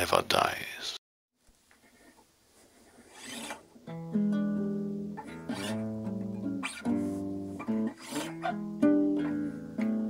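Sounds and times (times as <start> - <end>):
acoustic guitar playing: 3.2 - 10.0.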